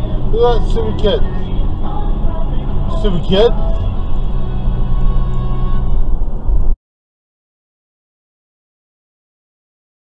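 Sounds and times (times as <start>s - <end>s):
car engine and tyre noise: 0.0s - 6.8s.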